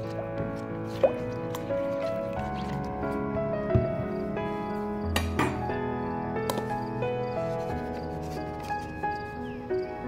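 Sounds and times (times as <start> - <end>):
background music sustained notes: 0.0 - 10.0.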